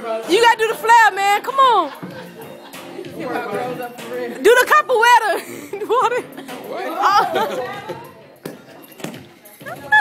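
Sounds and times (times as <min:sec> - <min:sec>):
chatter of people: 0:00.0 - 0:10.0
faint music: 0:00.0 - 0:10.0.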